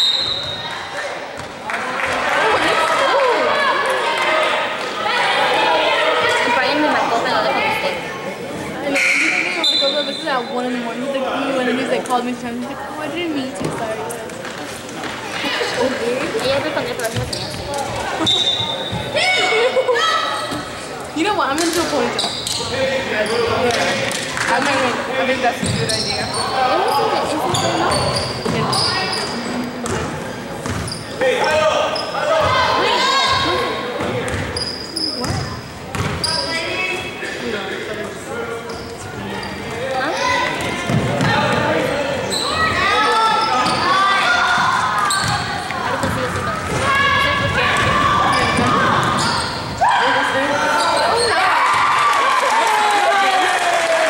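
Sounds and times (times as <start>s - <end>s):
people calling out echoing: 2.4s - 11.7s, 40.0s - 54.0s.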